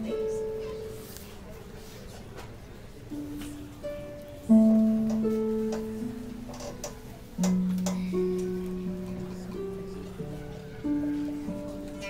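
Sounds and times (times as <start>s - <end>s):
plucked harp notes: 3.1s - 12.0s.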